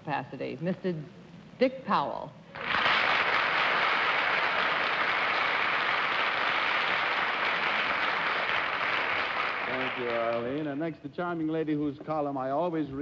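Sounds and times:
audience applauding: 2.5 - 10.8.

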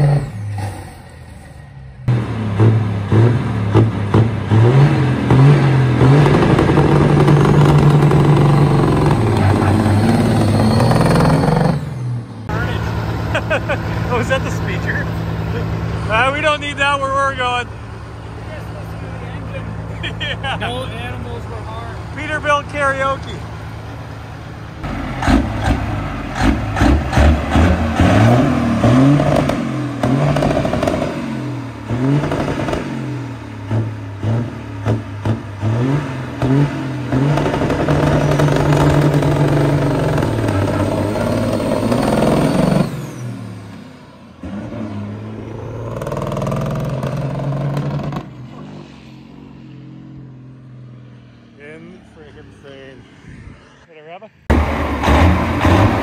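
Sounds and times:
diesel truck accelerating: 0.0 - 56.0.

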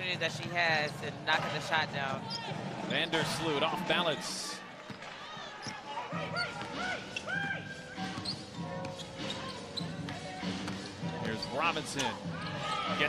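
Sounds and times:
sneakers squeaking on floor: 2.1 - 3.4, 4.8 - 12.3.

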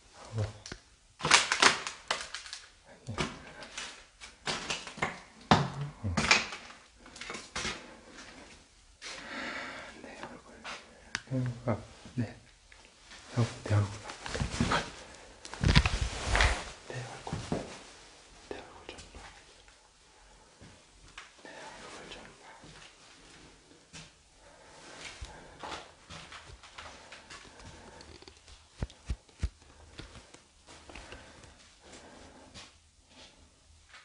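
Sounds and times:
heavy breathing: 7.0 - 11.4, 20.0 - 33.6.

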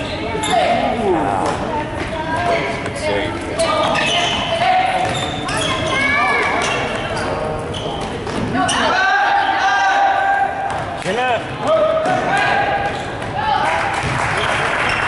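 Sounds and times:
people shouting: 8.7 - 10.7.

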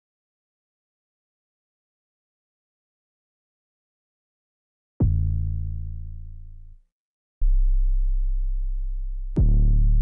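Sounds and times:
deep bass notes: 5.0 - 6.8, 7.4 - 10.0.

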